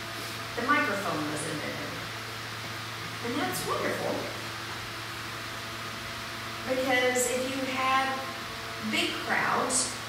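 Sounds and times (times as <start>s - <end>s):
low even hum: 0.0s - 10.0s
room tone hiss: 0.0s - 10.0s.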